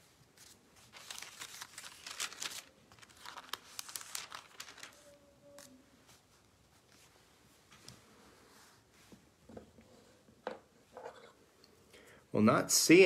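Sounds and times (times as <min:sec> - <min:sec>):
thin pages rustling and crinkling: 0:00.0 - 0:09.2.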